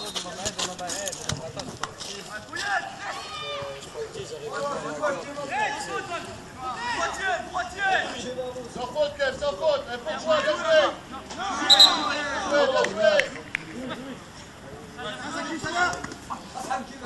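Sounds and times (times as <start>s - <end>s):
voices shouting and calling out: 0.0s - 17.0s.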